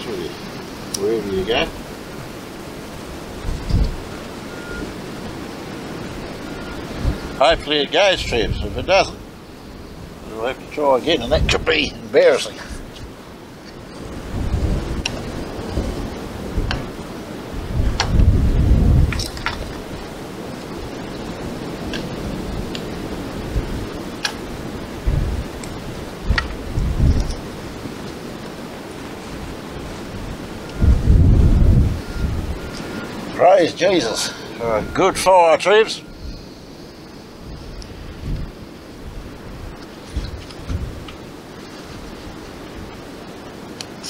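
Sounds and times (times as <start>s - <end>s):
fire crackling: 0.0s - 44.0s
outdoor wind noise: 0.0s - 44.0s
wind buffeting microphone: 0.0s - 44.0s.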